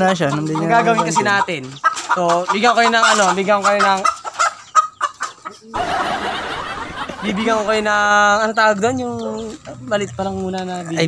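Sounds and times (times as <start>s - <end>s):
chicken clucking: 0.0s - 11.0s.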